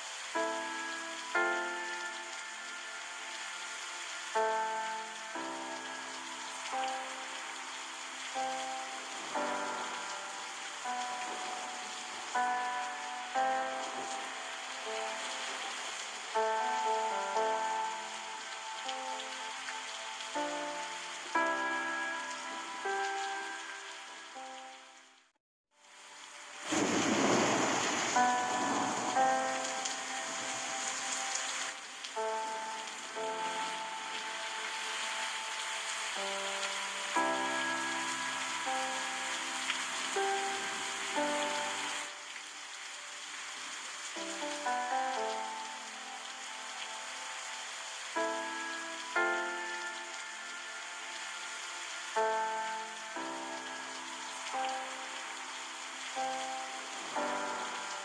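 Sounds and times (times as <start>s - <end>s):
river water rushing: 0.0s - 24.7s, 25.9s - 58.0s
gentle instrumental melody: 0.0s - 58.0s.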